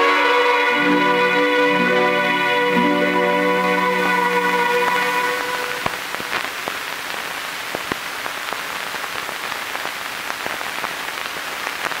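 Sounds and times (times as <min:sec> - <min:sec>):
film soundtrack hiss: 0:00.0 - 0:12.0
film crackle clicks and pops: 0:05.7 - 0:12.0.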